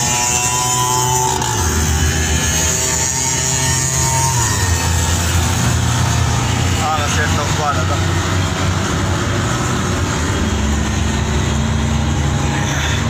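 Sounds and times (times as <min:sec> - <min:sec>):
two-stroke engine running hard: 0:00.0 - 0:13.0.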